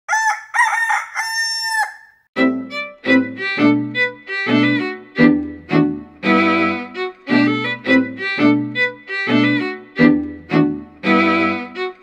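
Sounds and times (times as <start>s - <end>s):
rooster crowing: 0.1s - 2.2s.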